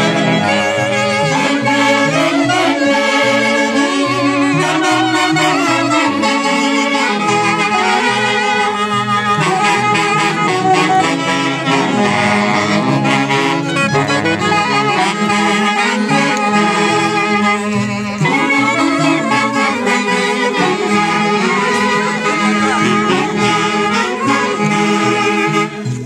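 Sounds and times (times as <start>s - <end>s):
moving bass line: 0.0s - 25.8s
saxophones playing melody: 0.0s - 26.0s.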